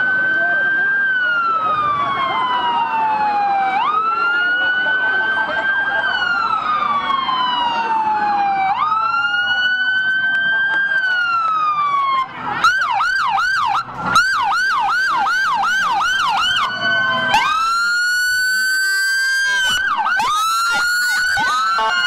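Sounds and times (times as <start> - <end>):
emergency vehicle sirens: 0.0 - 22.0.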